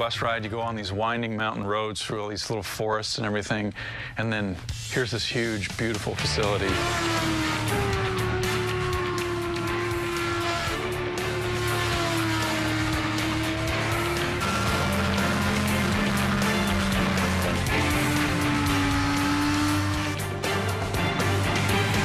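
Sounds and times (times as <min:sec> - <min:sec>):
background music: 0:00.0 - 0:02.3, 0:03.2 - 0:22.0
motorcycle engine at high revs: 0:06.2 - 0:22.0.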